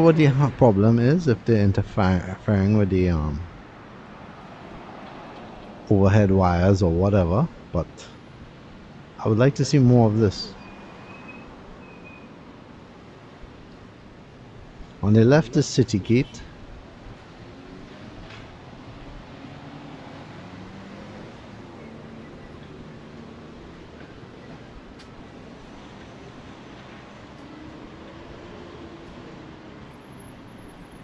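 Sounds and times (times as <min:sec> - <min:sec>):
road noise hum: 0:00.0 - 0:31.0
vehicle engines passing: 0:00.0 - 0:31.0.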